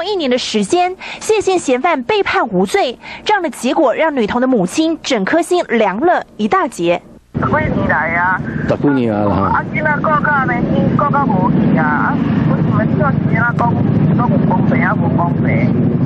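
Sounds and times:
woman speaking over telephone: 0.0 - 8.7, 9.4 - 15.8.

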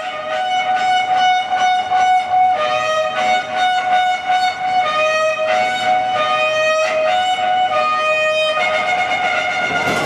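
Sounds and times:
trumpet long held notes: 0.0 - 10.0.

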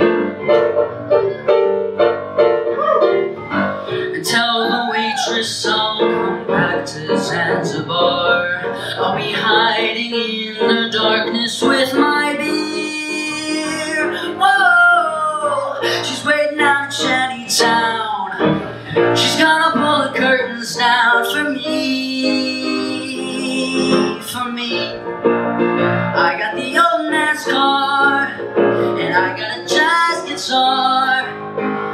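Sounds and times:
piano accompaniment: 0.0 - 31.9.

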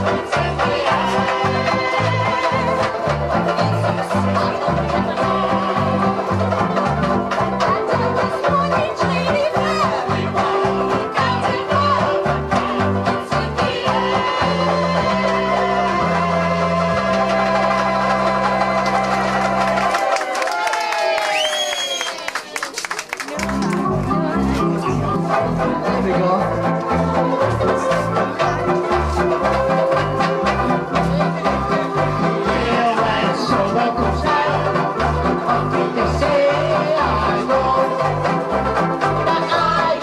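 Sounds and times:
woman singing: 0.0 - 6.4, 7.5 - 18.5, 39.2 - 40.0
banjo ukuleles playing chord: 0.0 - 20.2, 23.4 - 40.0
bass line: 0.0 - 20.2, 23.3 - 40.0
clapping and cheering: 0.0 - 25.7
man singing: 25.3 - 30.5, 31.4 - 38.6.

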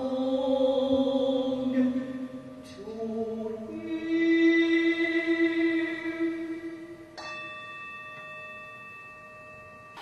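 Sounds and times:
struck bell-like tone: 1.4 - 10.0.

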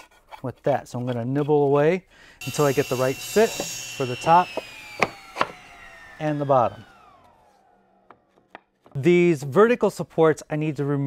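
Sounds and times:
table saw spinning down: 2.4 - 8.6.

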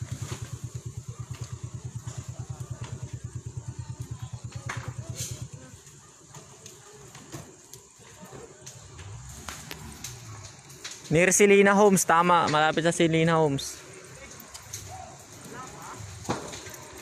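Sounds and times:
motorcycle engine idling: 0.0 - 11.3, 12.4 - 17.0.

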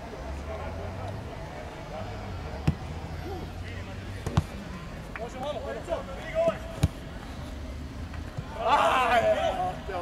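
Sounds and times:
football kick impact: 2.6 - 2.9
players shouting: 8.3 - 10.0.

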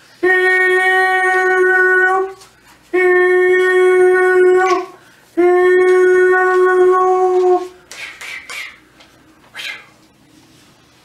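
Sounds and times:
man singing long high notes: 0.2 - 7.8.

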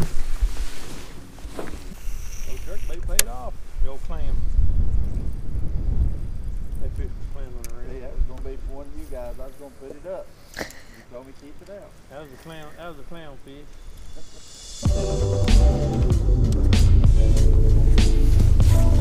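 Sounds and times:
indistinct voices talking: 11.4 - 19.0
low rumble: 14.3 - 19.0.

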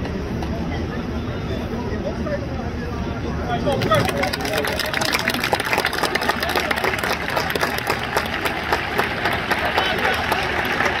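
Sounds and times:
murmur of voices: 0.0 - 11.0
crowd clapping: 3.6 - 11.0.

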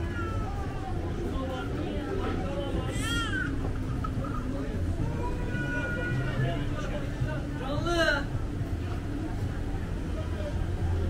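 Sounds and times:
murmur of busy market street: 0.0 - 11.0.

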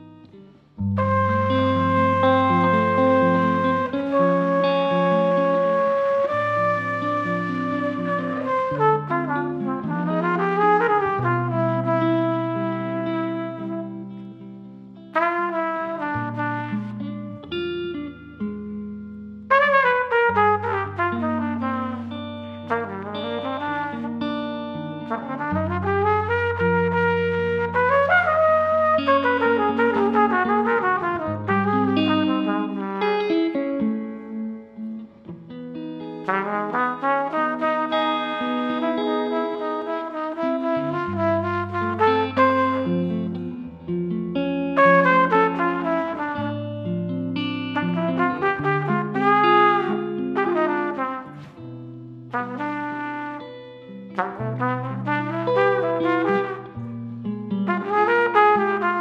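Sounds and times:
guitar chords: 0.0 - 59.0
trumpet melody: 0.8 - 14.4, 15.1 - 18.2, 19.5 - 33.9, 36.0 - 43.9, 44.8 - 57.1, 57.7 - 59.0.

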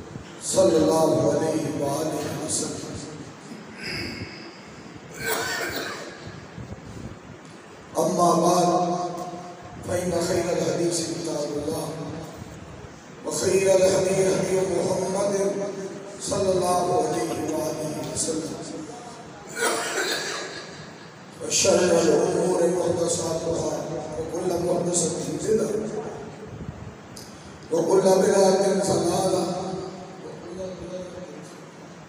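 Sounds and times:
man speaking into a microphone: 0.4 - 4.5, 7.9 - 26.6, 27.2 - 31.9
man coughing: 5.1 - 6.3, 19.5 - 20.8.

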